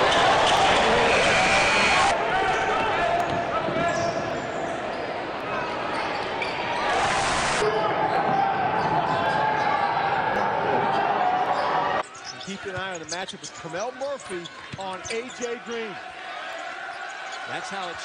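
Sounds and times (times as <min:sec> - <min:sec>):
crowd noise: 0:00.0 - 0:18.0.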